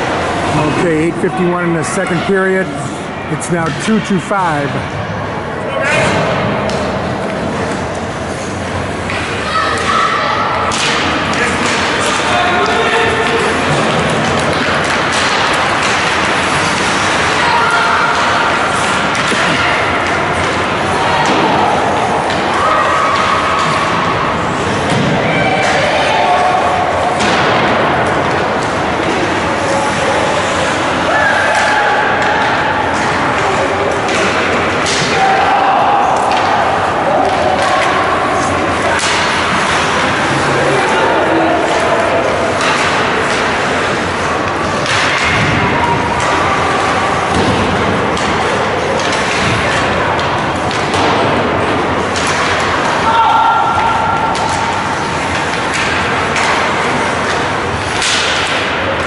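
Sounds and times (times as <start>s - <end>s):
people shouting: 9.3s - 13.6s, 15.2s - 24.4s, 25.1s - 27.5s, 29.7s - 43.4s, 52.2s - 56.5s.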